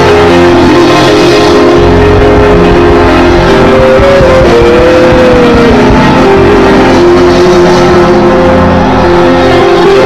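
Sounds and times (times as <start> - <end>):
held pitched line: 0.0 - 10.0
worship music held chords: 0.0 - 10.0.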